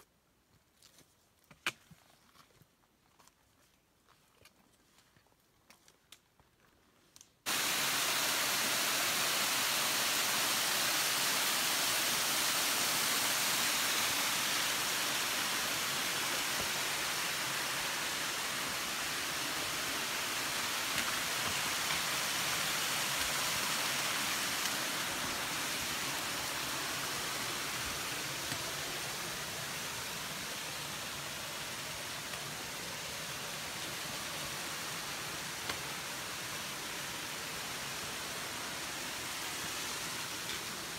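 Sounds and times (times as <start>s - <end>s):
loud steady hiss: 7.5s - 40.9s.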